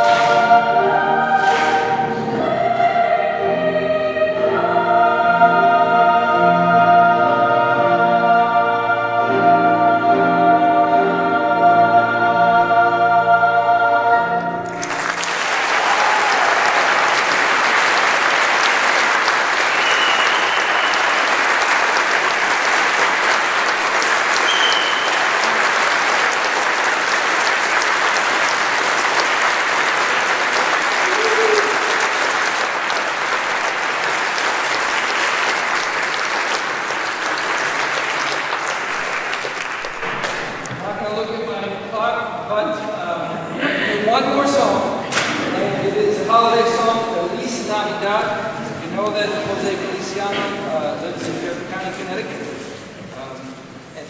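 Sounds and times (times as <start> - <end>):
youth choir singing a sustained chord: 0.0 - 14.7
audience applause: 14.7 - 41.0.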